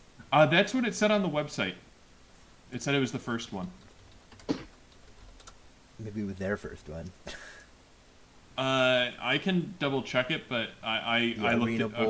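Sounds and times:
sharp knock: 0:04.5 - 0:04.7.

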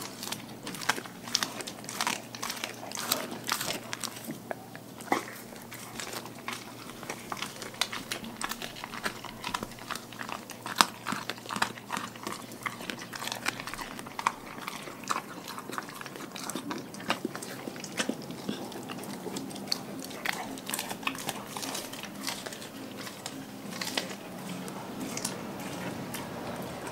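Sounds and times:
dog chewing and crunching fish: 0:00.0 - 0:26.9.

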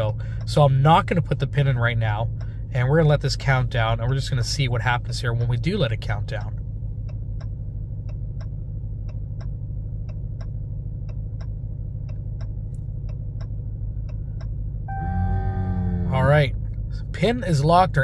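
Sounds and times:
truck engine idling: 0:00.0 - 0:18.0.

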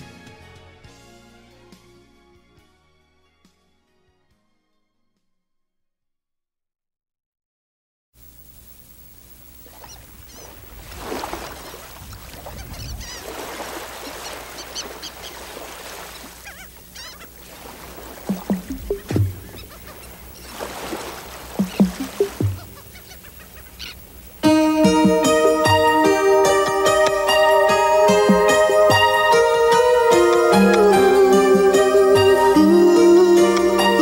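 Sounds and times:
birds honking and chirping: 0:09.7 - 0:34.0.

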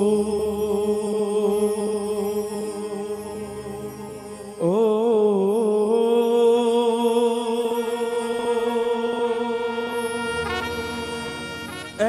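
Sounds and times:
keyboard sustained notes: 0:00.0 - 0:12.0.

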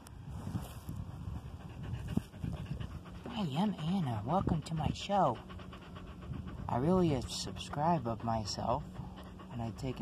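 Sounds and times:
dog panting: 0:01.1 - 0:10.0.

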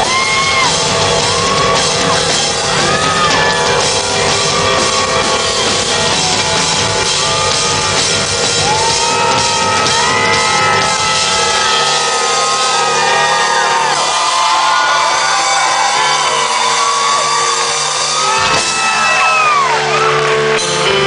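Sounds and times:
shouts and whoops: 0:00.0 - 0:03.7, 0:06.1 - 0:20.4
drum kit playing: 0:00.0 - 0:21.0
live rock music: 0:00.0 - 0:21.0.

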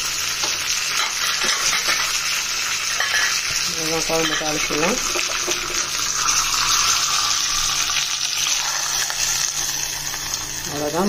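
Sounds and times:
spices sizzling in hot oil: 0:00.0 - 0:11.0.

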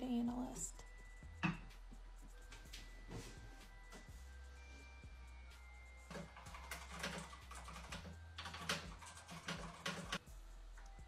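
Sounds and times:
fast typing on keyboard: 0:06.1 - 0:10.2.

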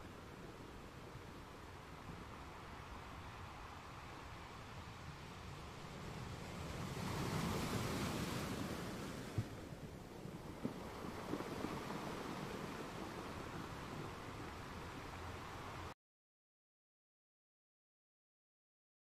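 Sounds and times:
wind rushing over microphone: 0:00.0 - 0:15.9.

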